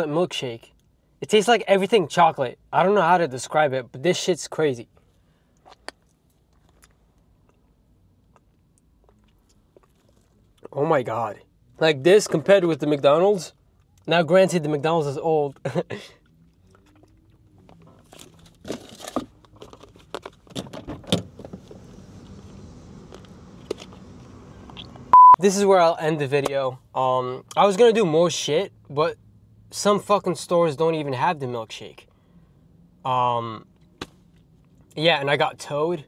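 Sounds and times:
outdoor background hum: 0:00.0 - 0:36.0
car door opening: 0:20.5 - 0:22.4.

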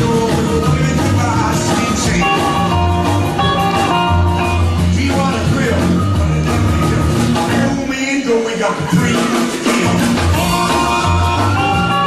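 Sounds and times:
rockabilly band playing live: 0:00.0 - 0:12.0.

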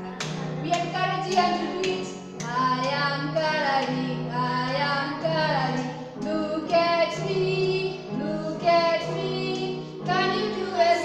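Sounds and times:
hand claps: 0:00.1 - 0:04.1
woman and girl singing: 0:00.6 - 0:11.0.

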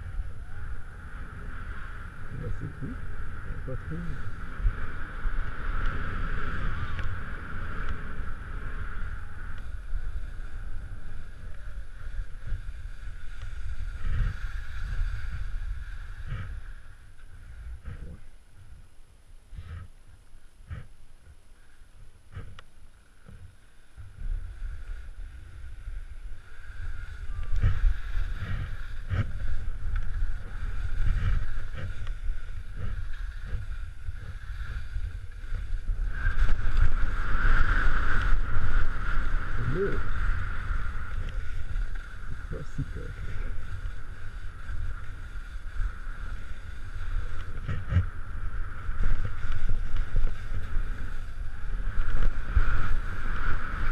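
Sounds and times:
skis scraping over crusted snow: 0:00.0 - 0:18.8, 0:19.5 - 0:53.9
wind rumbling on microphone: 0:00.0 - 0:53.9
skis knocking on snow crust: 0:27.1 - 0:53.9.

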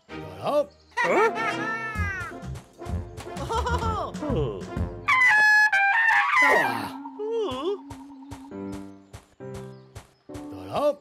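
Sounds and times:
background music with a beat: 0:02.0 - 0:05.1.

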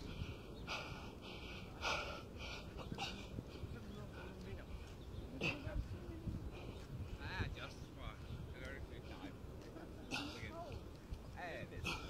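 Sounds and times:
man's sharp heavy breaths: 0:00.0 - 0:05.6.

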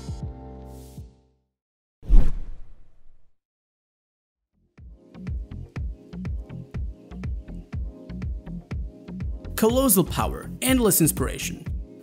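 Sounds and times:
whoosh: 0:02.0 - 0:03.3.

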